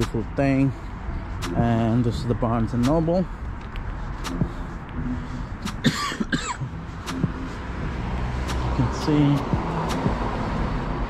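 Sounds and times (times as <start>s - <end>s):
low steady rumble: 0.9s - 11.0s
sharp ticks: 1.4s - 5.8s, 6.7s - 10.4s
person coughing: 5.8s - 6.7s.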